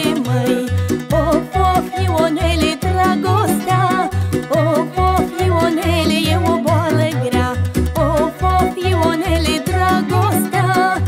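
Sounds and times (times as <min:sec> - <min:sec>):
bass line: 0:00.0 - 0:11.0
folk band accompaniment: 0:00.0 - 0:11.0
woman singing ornamented melody: 0:00.0 - 0:11.0.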